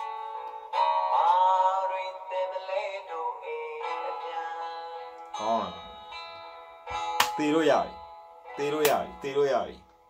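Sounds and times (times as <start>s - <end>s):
man singing slow melody: 0.4s - 5.9s.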